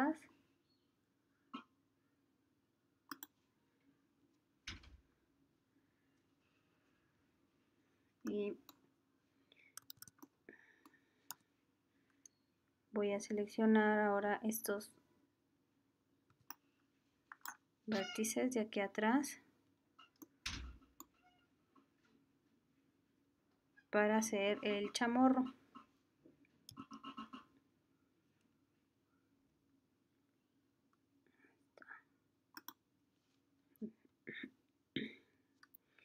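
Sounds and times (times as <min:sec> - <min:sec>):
computer mouse clicks: 0:03.1 - 0:03.3, 0:09.8 - 0:10.3, 0:32.6 - 0:32.8
person whispering: 0:08.3 - 0:08.6, 0:31.8 - 0:32.2.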